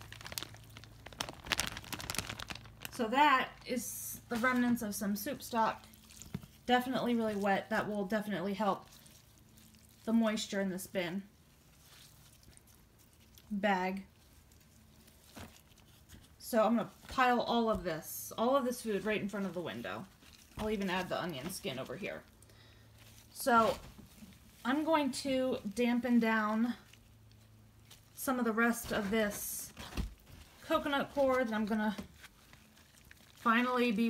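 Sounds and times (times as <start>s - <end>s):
wet food scraps sliding: 0.0s - 3.0s, 5.4s - 10.5s, 18.7s - 24.8s, 28.8s - 34.0s
plastic bag crinkling: 0.0s - 17.7s, 18.4s - 34.0s.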